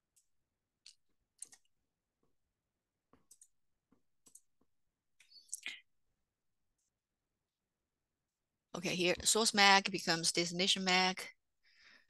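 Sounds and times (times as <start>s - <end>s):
mouse and keyboard clicks: 0.9s - 1.7s.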